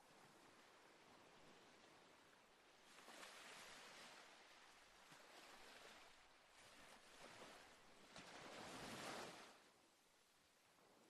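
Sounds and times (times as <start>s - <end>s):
faint ocean surf: 0.0s - 11.0s.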